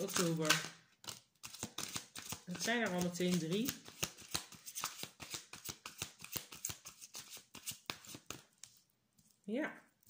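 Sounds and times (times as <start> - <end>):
cards being shuffled: 0.0 - 8.8.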